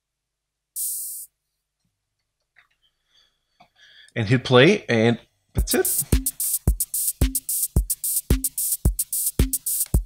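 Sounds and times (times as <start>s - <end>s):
open hi-hat hiss: 0.7s - 1.4s, 5.6s - 10.0s.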